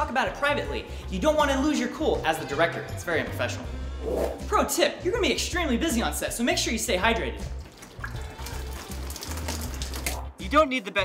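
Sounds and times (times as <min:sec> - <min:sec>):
background music: 0:00.0 - 0:11.0
water splashing over face: 0:07.4 - 0:10.4.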